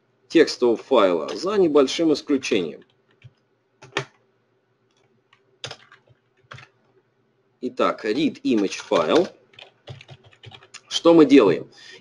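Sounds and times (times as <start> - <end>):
keyboard keys clicking: 2.8 - 4.2, 5.6 - 6.7, 8.5 - 10.8.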